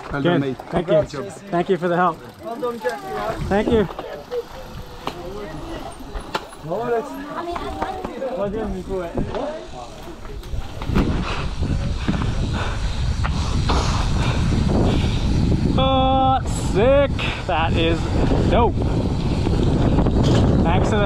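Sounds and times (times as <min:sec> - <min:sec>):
people talking: 0:00.0 - 0:12.0, 0:15.7 - 0:18.8, 0:20.6 - 0:21.0
bike tyres rolling on pavement: 0:00.0 - 0:21.0
wind on microphone: 0:10.2 - 0:21.0.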